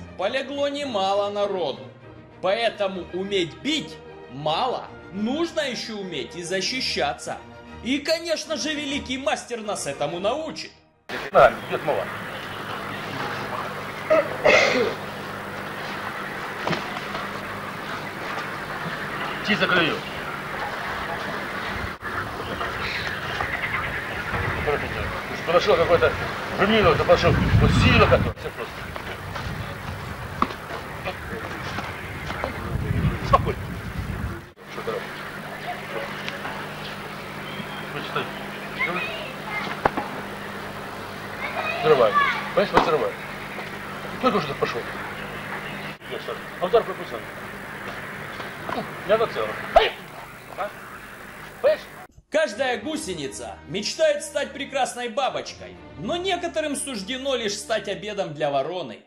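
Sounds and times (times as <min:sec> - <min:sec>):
faint voices: 0:11.1 - 0:52.1
steady low hum: 0:11.1 - 0:52.1
handling or wind rumble: 0:11.2 - 0:37.4.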